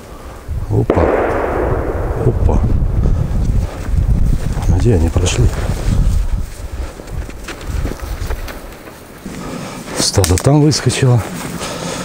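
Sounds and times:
distant gunshot echoing: 0.9 - 4.5
low rumble: 0.9 - 6.6.

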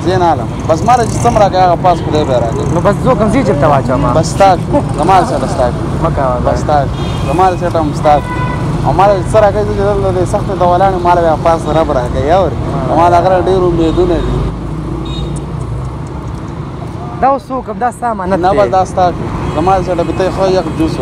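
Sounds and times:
men talking: 0.0 - 14.6, 16.8 - 21.0
traffic rumble: 0.0 - 21.0
car horn toot: 6.9 - 8.7, 15.0 - 15.4.

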